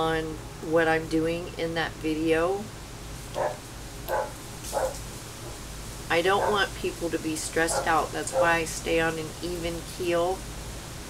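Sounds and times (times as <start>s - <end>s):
dog barking: 3.4s - 5.0s, 6.4s - 6.6s, 7.7s - 8.6s.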